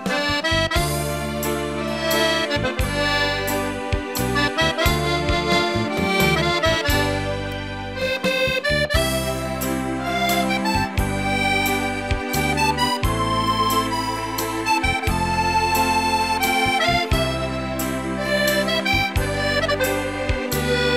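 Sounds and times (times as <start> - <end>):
button accordion waltz: 0.0 - 20.9.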